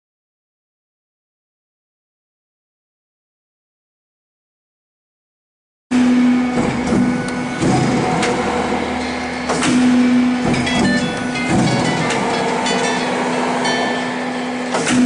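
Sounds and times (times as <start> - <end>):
hydraulic pump hum: 5.9 - 15.0.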